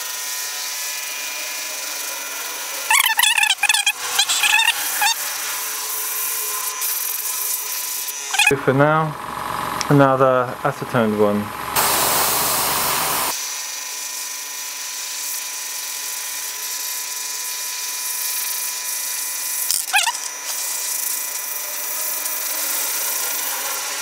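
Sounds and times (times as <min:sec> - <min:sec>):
wavering squeal: 0:02.8 - 0:07.3, 0:08.1 - 0:08.6, 0:19.7 - 0:20.4
airbrush air hiss: 0:11.8 - 0:13.4, 0:19.9 - 0:23.7.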